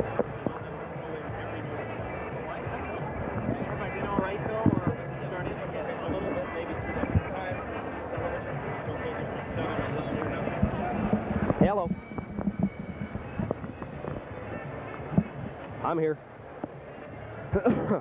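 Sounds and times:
indistinct background voices: 0.0s - 17.9s
faint music: 0.0s - 18.0s
steady din: 9.5s - 15.6s.

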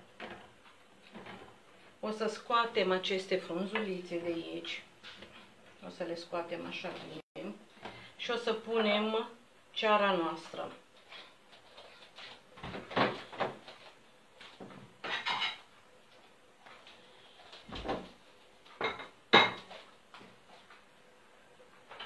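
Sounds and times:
dishes clinking: 18.8s - 19.8s.

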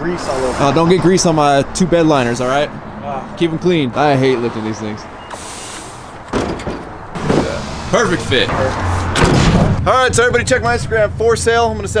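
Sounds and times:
tire landing with a thud: 9.1s - 9.8s.

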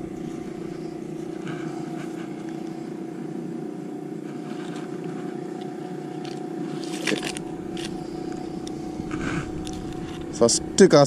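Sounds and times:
boat engine running: 0.0s - 11.0s
faint handling rustles: 4.1s - 10.9s.

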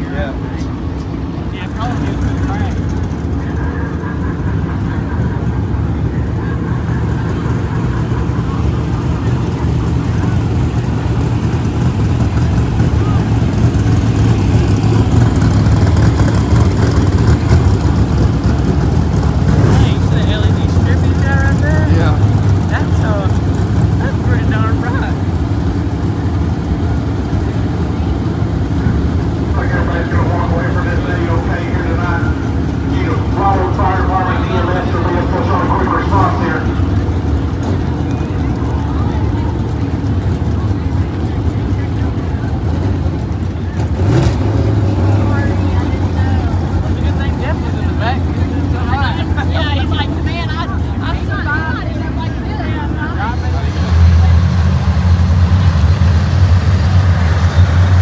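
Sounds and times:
race car engines droning: 0.0s - 58.0s.

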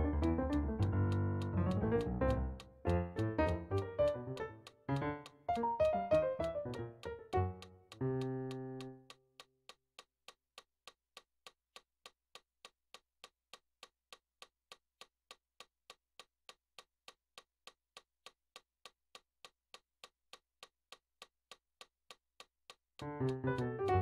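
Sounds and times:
faint metronome clicks: 0.0s - 24.0s.

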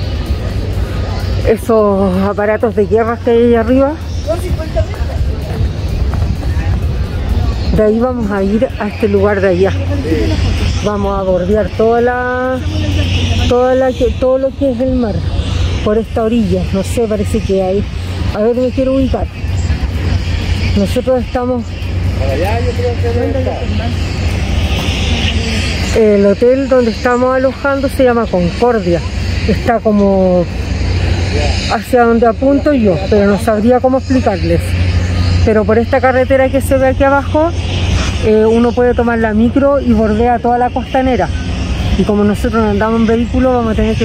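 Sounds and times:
faint voices: 0.0s - 44.0s
wind buffeting microphone: 0.0s - 44.0s.

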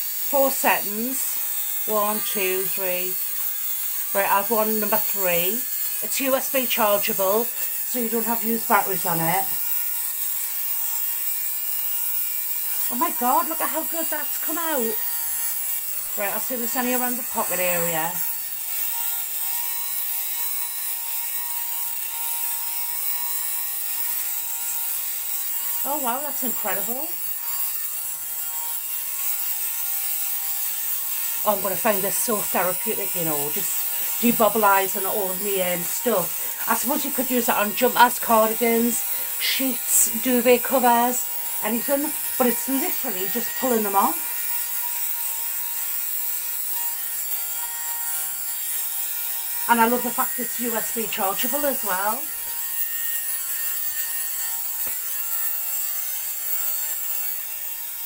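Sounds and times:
blades shaving fabric hiss: 0.0s - 58.0s
lint remover motor humming: 0.0s - 58.0s.

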